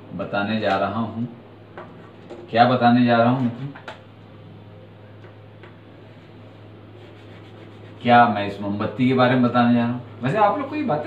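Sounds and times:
low electrical hum: 0.0s - 11.0s
chalk tapping and scratching: 7.0s - 8.2s.

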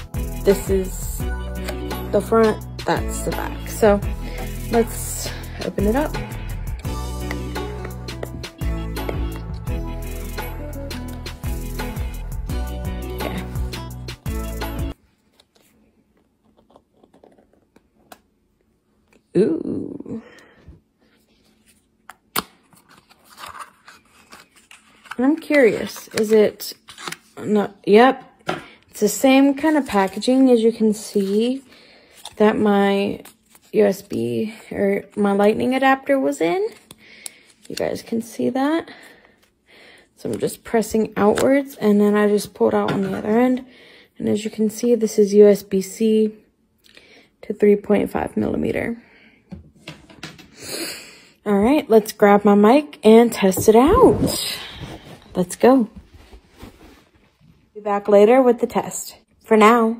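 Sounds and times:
packaging rustling: 22.6s - 27.4s.

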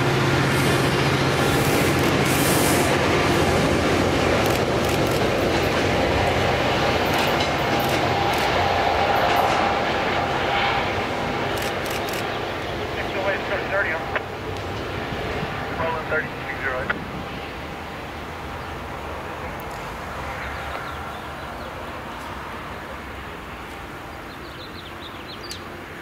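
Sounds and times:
diesel train pulling away: 0.0s - 26.0s.

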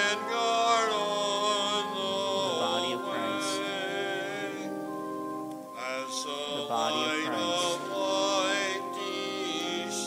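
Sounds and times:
person singing a hymn: 0.0s - 10.0s
sustained instrumental chords: 0.0s - 10.0s.

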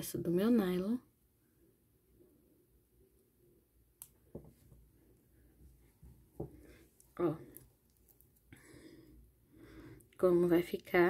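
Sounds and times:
soft handling bumps: 5.6s - 6.9s.

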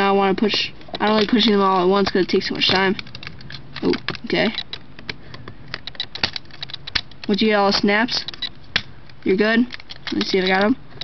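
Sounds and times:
plastic case clicking together: 0.4s - 11.0s.

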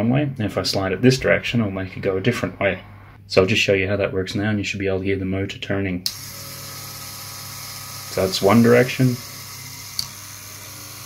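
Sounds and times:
small electric motor running: 6.1s - 11.0s.

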